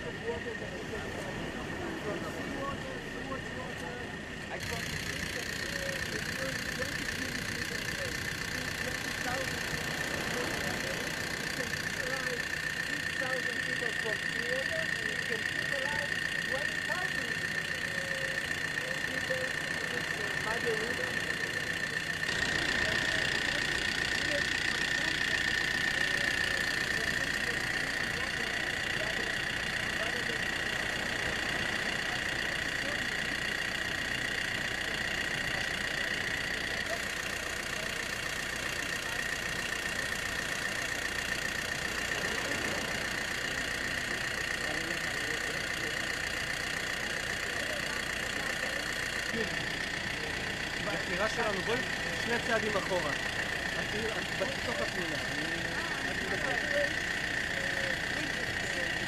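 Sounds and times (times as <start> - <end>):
engine-like drone: 0.0 - 59.0
machinery running with high whine: 0.0 - 59.0
murmur of crowd voices: 0.0 - 59.0.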